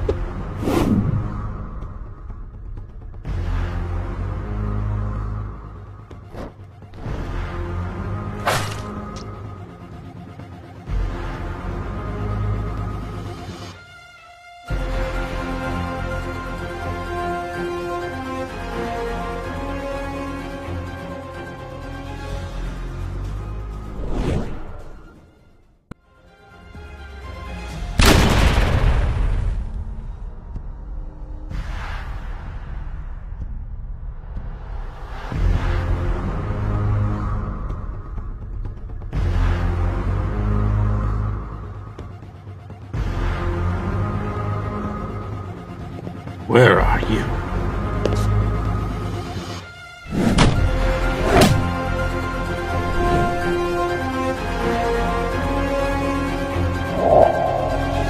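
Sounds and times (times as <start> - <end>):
low music drone: 56.4 - 58.0
cinematic boom: 56.8 - 58.0
whoosh sound effect: 56.8 - 58.0.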